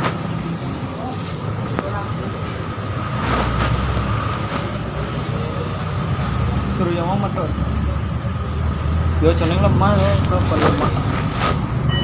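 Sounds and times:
faint voices: 0.0 - 11.6
motor vehicles rumbling: 0.0 - 12.0.

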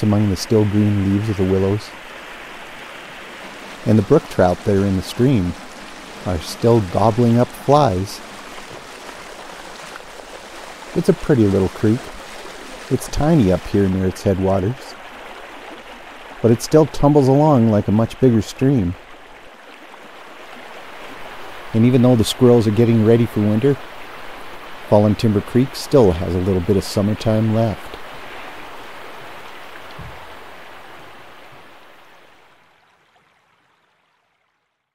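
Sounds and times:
creek water rushing over rock: 0.0 - 34.5
soft low thump: 29.9 - 30.4.

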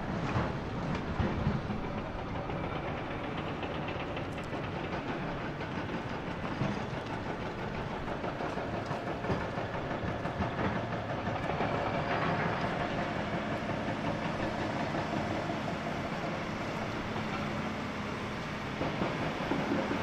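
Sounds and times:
excavator engines and hydraulics: 0.0 - 20.0.

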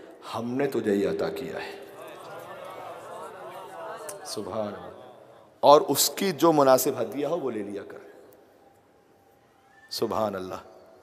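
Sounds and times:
man speaking over loudspeaker: 0.0 - 1.9, 3.7 - 8.2.

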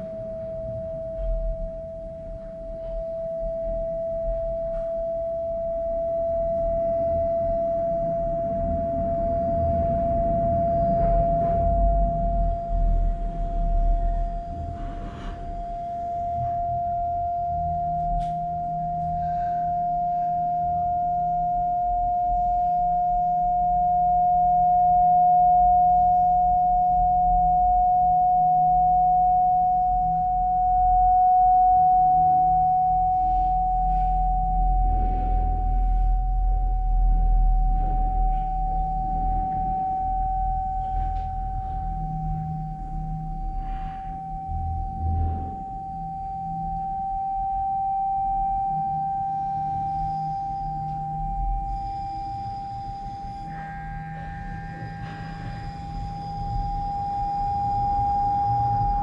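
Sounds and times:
low rumble: 0.0 - 59.0
rising pure tone: 0.0 - 59.0.

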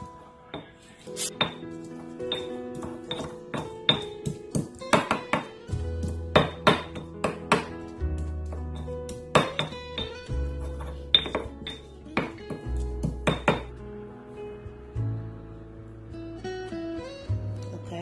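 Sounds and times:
background music with steady bass: 0.0 - 18.0
stone pestle pounding in mortar: 2.3 - 13.7.

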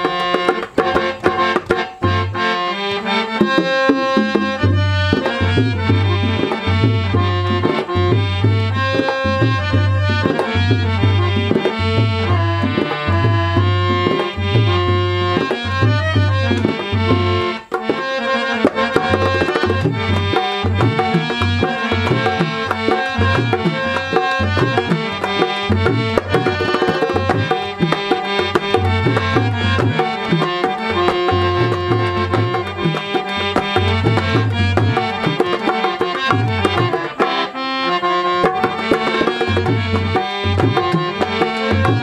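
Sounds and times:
hand drums: 0.0 - 42.0
harmonium melody: 0.0 - 42.0.

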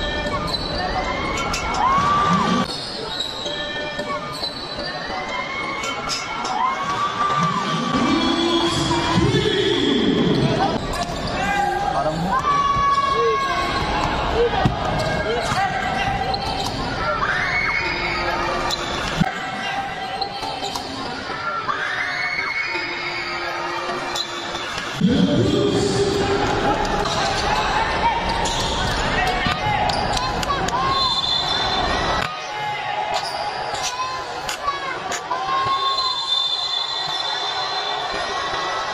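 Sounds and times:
sneakers squeaking: 0.0 - 7.8, 10.0 - 25.1, 26.9 - 38.7
crowd voices and shouts: 0.0 - 38.9
sneakers squeaking on hardwood: 2.6 - 5.2.

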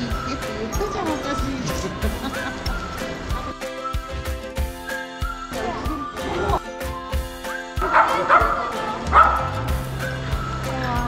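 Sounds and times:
background music: 0.0 - 11.0
dogs barking and yipping: 7.8 - 9.8.

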